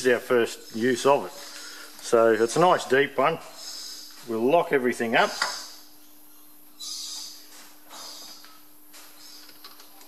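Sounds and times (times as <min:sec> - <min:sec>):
steady machine hum: 0:00.0 - 0:10.0.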